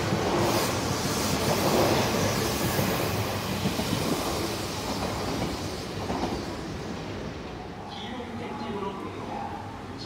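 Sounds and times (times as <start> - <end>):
electric train running past: 0.0 - 10.0.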